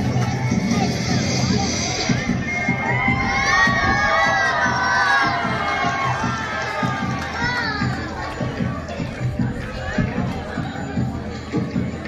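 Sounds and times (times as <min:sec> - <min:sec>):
crowd shouting and cheering: 0:00.0 - 0:12.0
music with a steady beat: 0:00.0 - 0:12.0.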